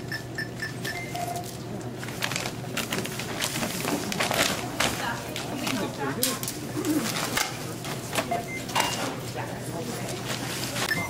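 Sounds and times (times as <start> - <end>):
items and bags rustling and knocking: 2.0 - 9.3
low voice murmuring: 6.6 - 7.8.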